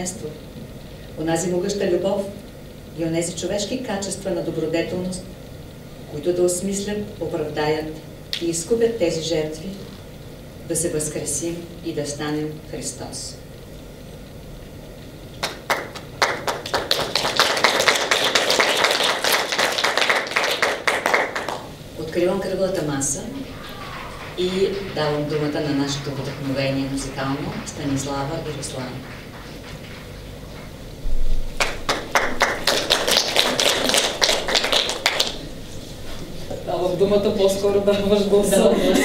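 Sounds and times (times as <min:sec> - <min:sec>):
audience applauding: 0:15.4 - 0:21.8, 0:23.4 - 0:30.0, 0:31.6 - 0:35.5.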